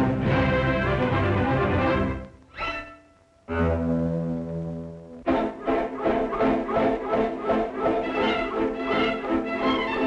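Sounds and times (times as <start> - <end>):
orchestra rhythmic passage: 0.0 - 10.0.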